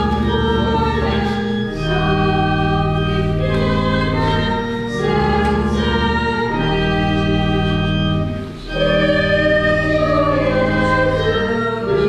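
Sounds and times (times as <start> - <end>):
choir singing a hymn: 0.0 - 12.0
organ chords: 0.0 - 12.0.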